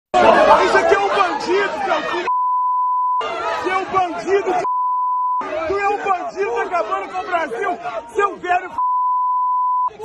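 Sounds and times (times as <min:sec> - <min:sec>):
man shouting: 0:00.2 - 0:02.3, 0:03.2 - 0:04.7, 0:05.4 - 0:08.8
other voices: 0:00.2 - 0:02.4, 0:03.2 - 0:04.8, 0:05.4 - 0:08.9
censor bleep: 0:02.3 - 0:03.2, 0:04.6 - 0:05.4, 0:08.8 - 0:09.9.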